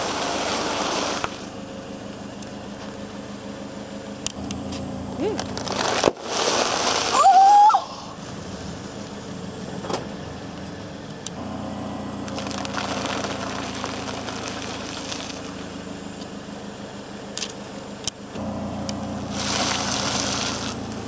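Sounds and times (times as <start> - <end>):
car engine idling: 0.0 - 21.0
plastic bag crinkling: 5.3 - 7.1, 12.2 - 15.5
plastic bag bursting: 5.3 - 7.3, 12.2 - 15.6.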